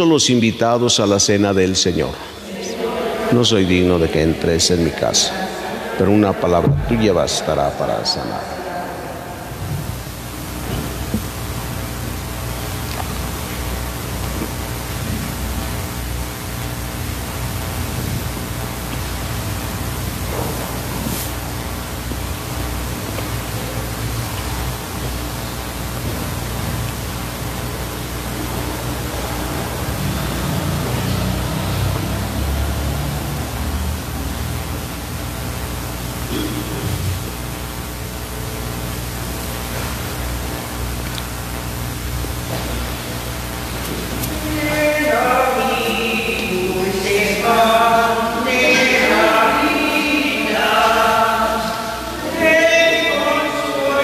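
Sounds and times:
steady hiss: 0.0s - 54.0s.

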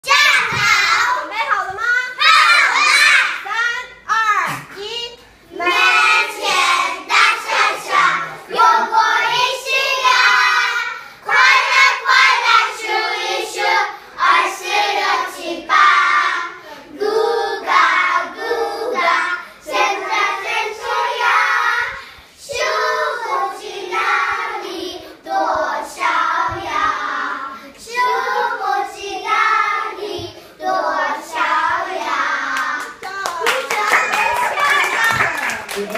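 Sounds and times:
young children singing: 0.0s - 3.4s, 5.5s - 33.1s.

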